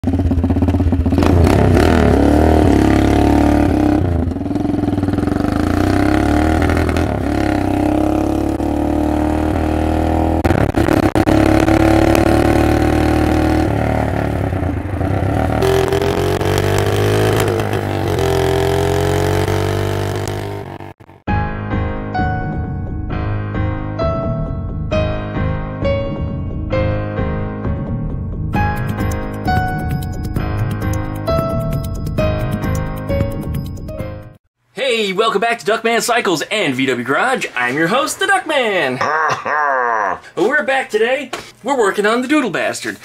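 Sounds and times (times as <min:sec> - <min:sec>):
minibike engine revving: 0:00.0 - 0:21.2.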